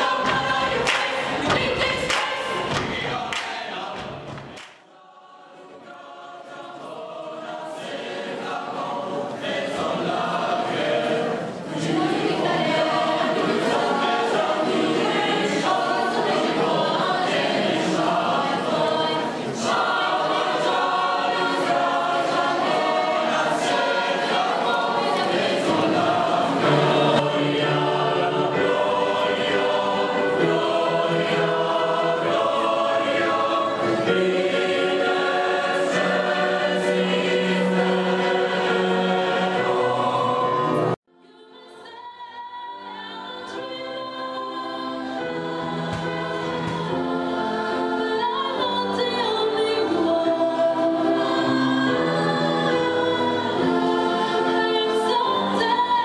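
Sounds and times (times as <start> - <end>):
large choir singing: 0.0 - 56.0.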